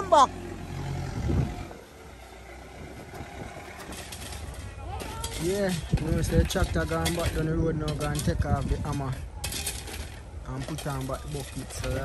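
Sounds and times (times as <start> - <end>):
diesel engine humming: 0.0 - 5.5
light knocks: 2.9 - 4.6.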